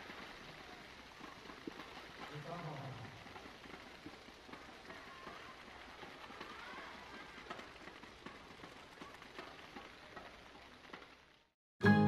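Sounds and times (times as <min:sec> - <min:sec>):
faint crowd applause: 0:00.0 - 0:11.5.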